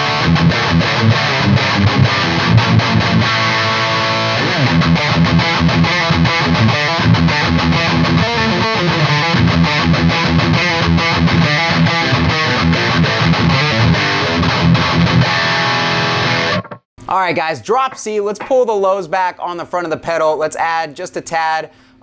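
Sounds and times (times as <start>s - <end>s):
heavily distorted electric guitar riff: 0.0s - 16.8s.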